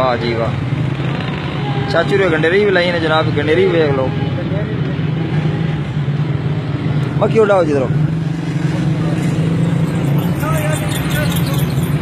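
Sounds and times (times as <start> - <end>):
street noise: 0.0 - 12.0
vehicle engine humming: 0.0 - 12.0
person speaking: 9.9 - 12.0.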